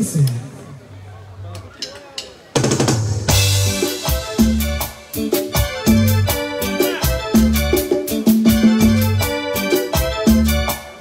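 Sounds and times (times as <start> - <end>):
band playing dance rhythm: 2.1 - 11.0.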